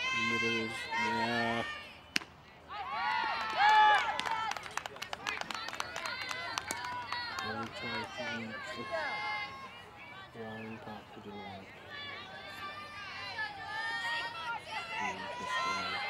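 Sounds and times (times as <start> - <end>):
girls shouting a cheer: 2.7 - 4.5, 5.8 - 10.2, 11.7 - 16.0
hand claps: 3.4 - 7.8.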